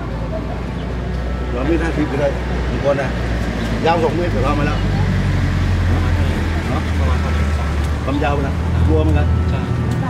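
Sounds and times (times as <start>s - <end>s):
people talking: 0.0s - 0.9s, 3.8s - 5.2s, 5.8s - 10.0s
street traffic rumble: 0.0s - 10.0s.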